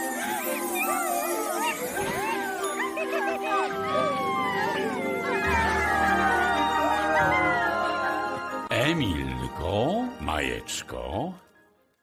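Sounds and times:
group cheering excitedly: 0.0s - 8.7s
festive background music: 0.0s - 12.0s.

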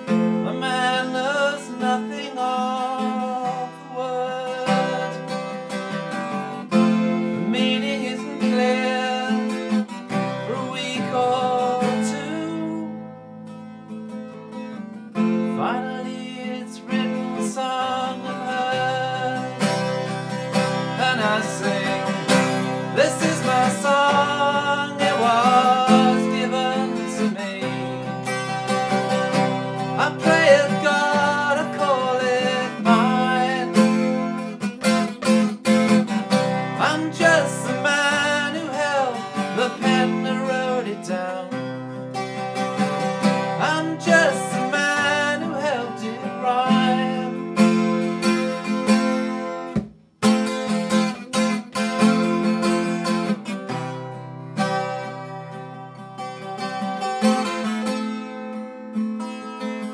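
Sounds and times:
acoustic guitar strummed chords: 0.0s - 59.9s
guitar melody: 0.0s - 59.9s.

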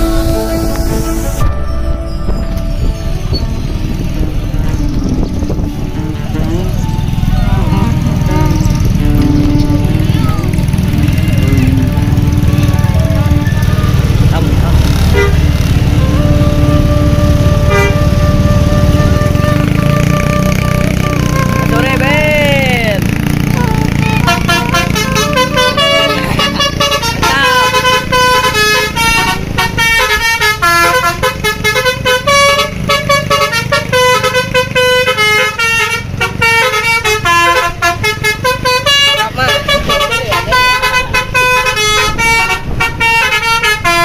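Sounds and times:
bus horn playing tunes: 0.0s - 44.0s
diesel bus engine running: 0.0s - 44.0s.

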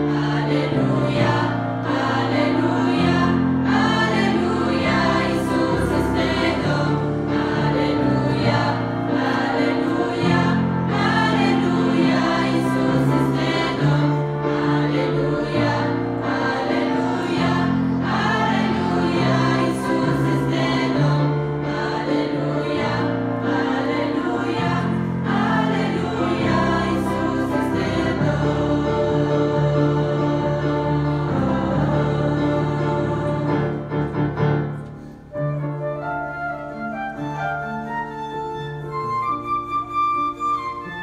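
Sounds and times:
choir singing a hymn: 0.0s - 35.1s.

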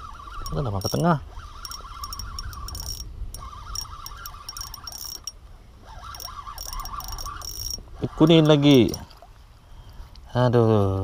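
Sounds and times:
fishing reel whirring and clicking: 0.0s - 9.2s.

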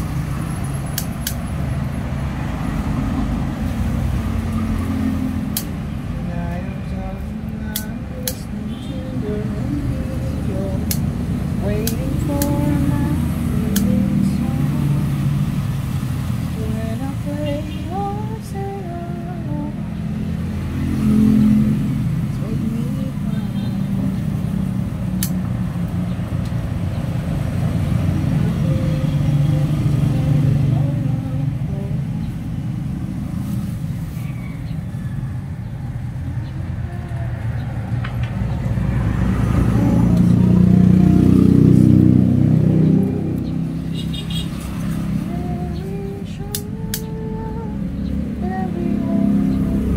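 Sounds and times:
low rumble of traffic: 0.0s - 49.9s.

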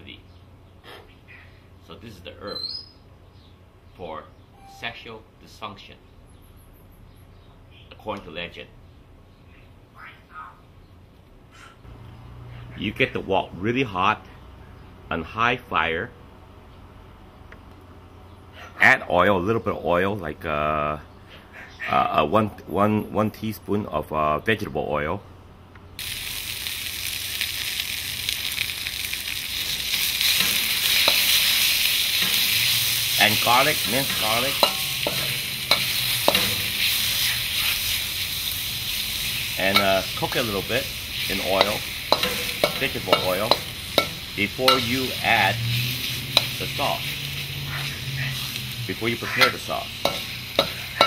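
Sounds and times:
faint bird calls: 21.0s - 22.1s
yam sizzling in hot oil: 26.0s - 51.0s.

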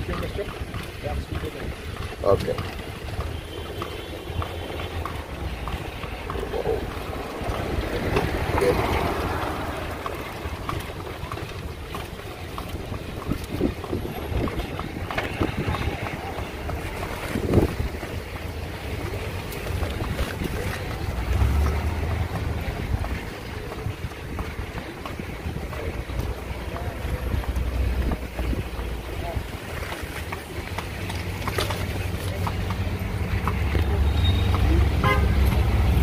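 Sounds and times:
street traffic rumble: 0.0s - 36.0s
wind buffeting microphone: 5.2s - 30.7s.

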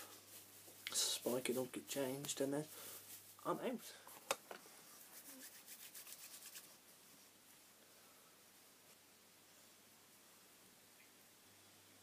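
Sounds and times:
hands rubbing together: 4.9s - 6.9s.

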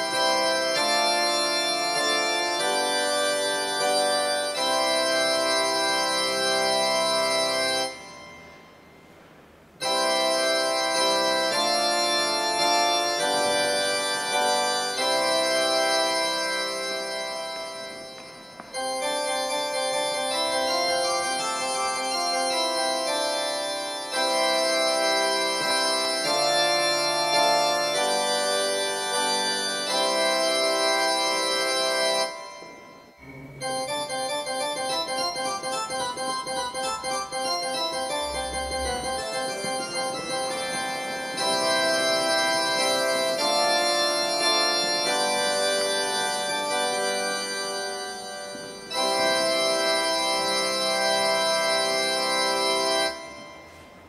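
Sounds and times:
pipe organ chords: 0.0s - 54.0s.

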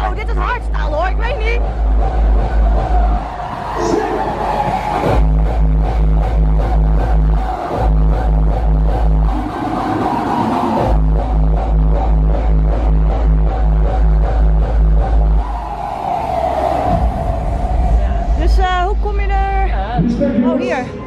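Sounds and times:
heavy bass and kick-drum beat: 0.0s - 20.8s
electronic dance music: 0.0s - 21.0s.

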